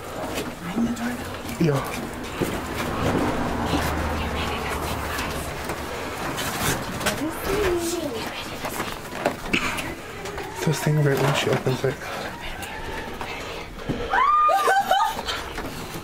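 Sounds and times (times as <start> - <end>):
people whispering: 0.0 - 13.8
rustling: 0.0 - 13.9.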